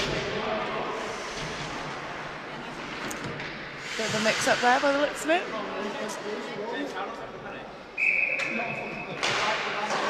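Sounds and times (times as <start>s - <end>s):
ice rink hum: 0.0s - 10.0s.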